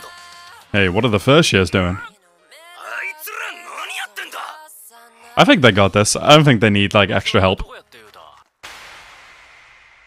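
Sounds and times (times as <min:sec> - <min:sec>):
soft music: 0:00.0 - 0:07.9
character voice speaking: 0:02.8 - 0:04.6.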